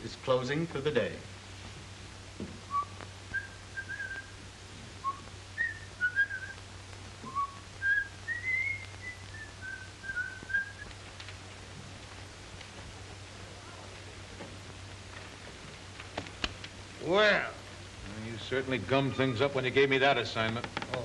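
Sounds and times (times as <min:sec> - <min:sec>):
steady low hum: 0:00.0 - 0:20.8
man whistling a tune: 0:02.7 - 0:04.4, 0:05.0 - 0:06.6, 0:07.3 - 0:10.9.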